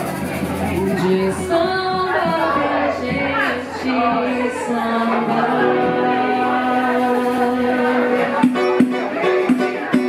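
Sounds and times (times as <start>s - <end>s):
samba group singing a long chord: 0.1s - 10.0s.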